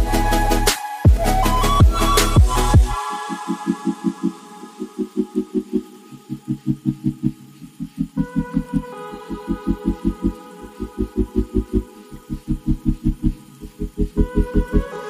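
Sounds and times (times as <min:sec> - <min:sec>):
fast pulsing bass: 0:00.0 - 0:03.0, 0:06.3 - 0:14.9
sustained synth chords: 0:00.0 - 0:15.0.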